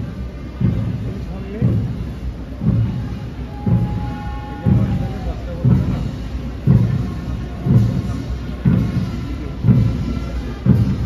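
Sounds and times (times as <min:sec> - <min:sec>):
bass drum march beat: 0:00.0 - 0:11.0
faint band music: 0:00.0 - 0:11.0.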